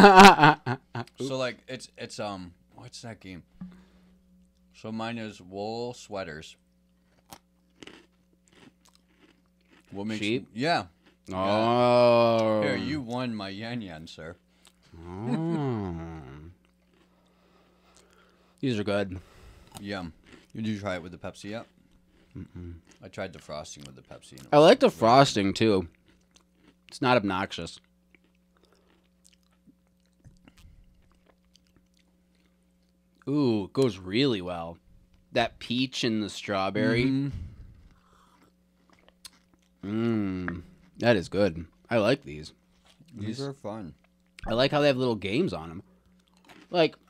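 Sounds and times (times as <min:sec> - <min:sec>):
steady low hum: 0:00.0 - 0:47.0
chewing and crunching biscuits: 0:06.6 - 0:15.0, 0:15.9 - 0:24.5, 0:25.3 - 0:33.9, 0:37.4 - 0:44.4, 0:45.3 - 0:47.0.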